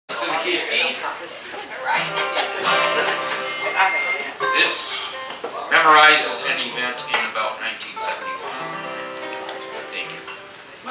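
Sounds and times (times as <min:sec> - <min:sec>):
acoustic guitars strummed: 0:01.9 - 0:10.9
thin high tone: 0:02.6 - 0:05.2.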